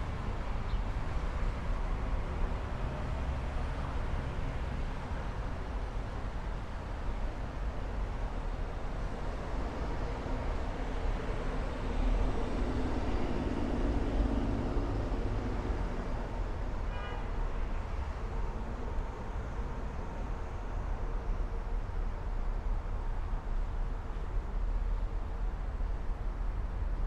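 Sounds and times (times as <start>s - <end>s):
rumble of passing vehicles: 0.0s - 27.0s.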